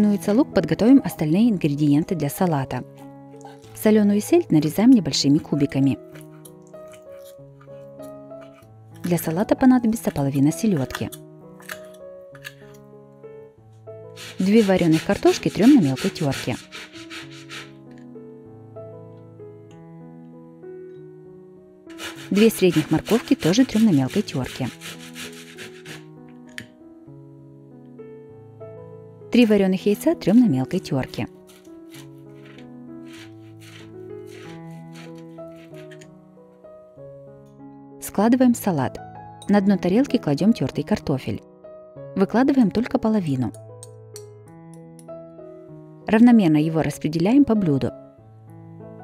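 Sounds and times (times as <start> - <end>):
soft background music: 0.0 - 49.0
egg grated on metal grater: 14.2 - 17.8, 21.9 - 26.1, 31.5 - 36.0
knife cutting on wooden board: 14.2 - 17.8, 21.9 - 26.1, 31.4 - 36.0.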